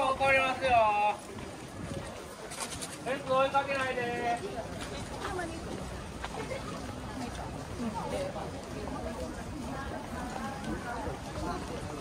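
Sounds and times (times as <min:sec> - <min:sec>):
outdoor crowd murmur: 0:00.0 - 0:12.0.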